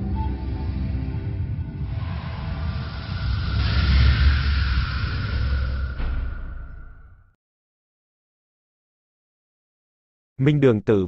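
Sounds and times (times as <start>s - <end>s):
rushing noise: 0.0s - 7.3s
deep rumble: 0.0s - 7.4s.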